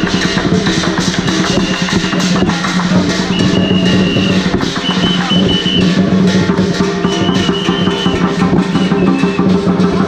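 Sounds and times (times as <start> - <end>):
drum gongs and cymbals beat: 0.0 - 10.0.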